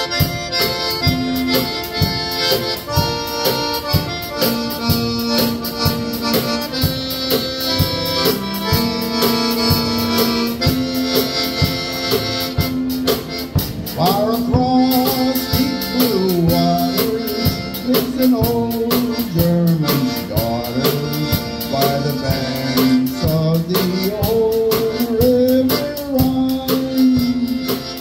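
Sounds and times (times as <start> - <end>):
accordion: 0.0 - 28.0
drum kit beat: 0.0 - 28.0
saxophone: 0.0 - 28.0
person singing: 14.0 - 28.0.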